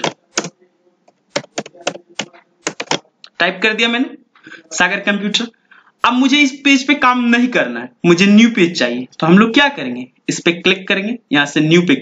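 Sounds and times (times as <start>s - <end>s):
computer keyboard typing: 0.0s - 3.1s.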